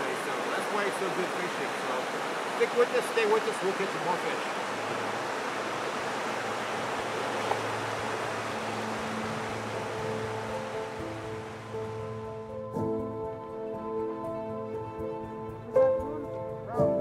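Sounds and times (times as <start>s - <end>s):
river water rushing over rocks: 0.0s - 12.4s
music with long held notes: 7.7s - 17.0s.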